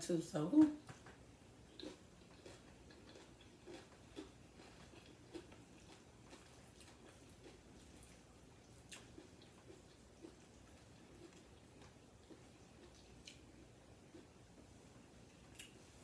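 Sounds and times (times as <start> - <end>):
soft chewing: 0.8 - 16.0.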